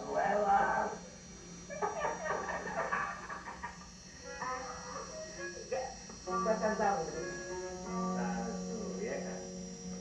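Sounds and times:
man laughing through tv speaker: 1.7s - 3.8s.

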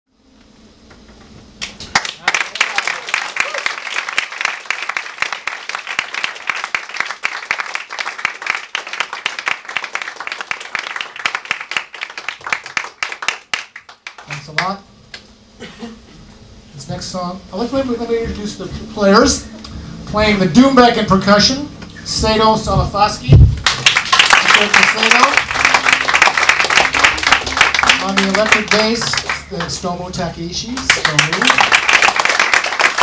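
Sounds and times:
audience applauding: 1.6s - 14.8s, 23.6s - 30.0s, 30.7s - 33.0s.

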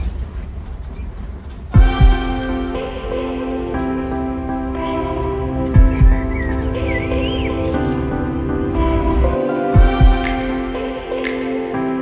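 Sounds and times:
low drum hits: 1.8s - 2.3s
music of sustained chords: 1.8s - 12.0s.

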